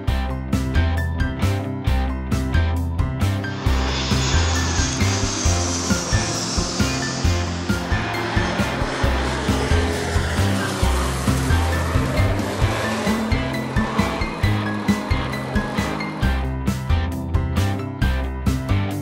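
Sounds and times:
turboprop airplane roar: 0.0 - 19.0
background music with steady beat: 2.4 - 19.0
high falling whine: 3.2 - 16.9.

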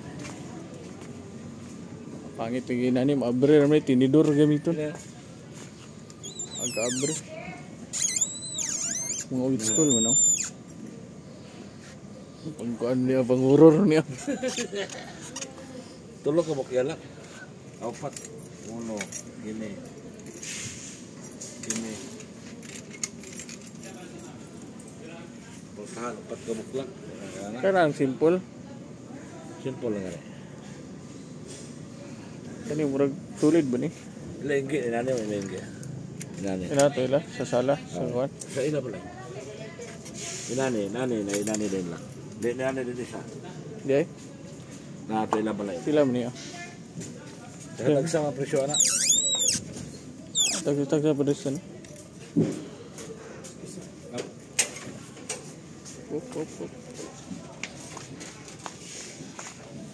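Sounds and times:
store background noise: 0.0 - 59.9
faint voices: 3.5 - 13.3.

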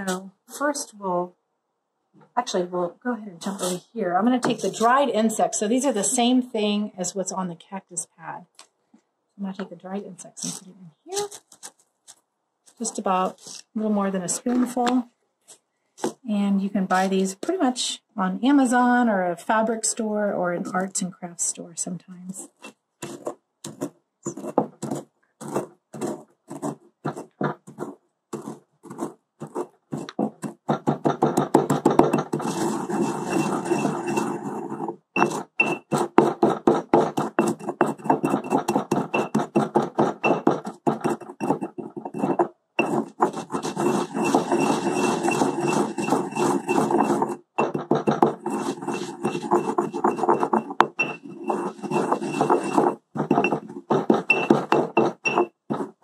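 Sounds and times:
mortar and pestle grinding: 22.4 - 56.0
pestle crushing strokes: 22.5 - 56.0.

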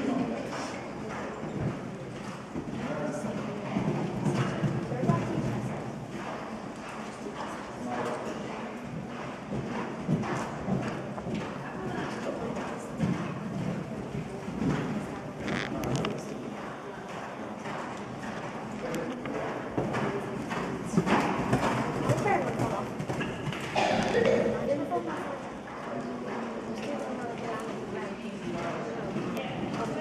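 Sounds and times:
horse hoofbeats on sand: 0.5 - 23.9.

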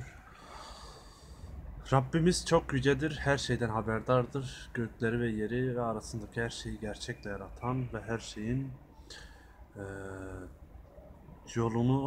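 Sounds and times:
man breathing in: 0.2 - 1.7, 9.0 - 9.7
man speaking: 1.9 - 8.8, 9.8 - 10.6.

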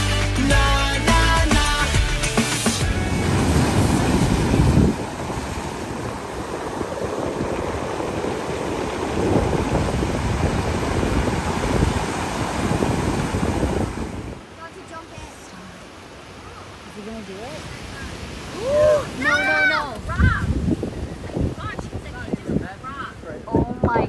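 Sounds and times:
background music: 0.0 - 4.4
surf washing over pebbly shore: 2.4 - 16.2
wind buffeting microphone: 2.8 - 15.4, 17.5 - 24.0.

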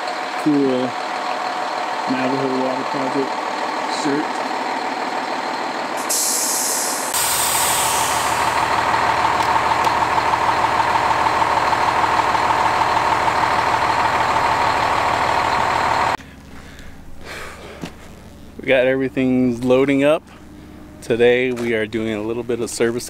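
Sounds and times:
diesel truck idling: 0.0 - 23.0
air brake hiss: 6.0 - 8.6.

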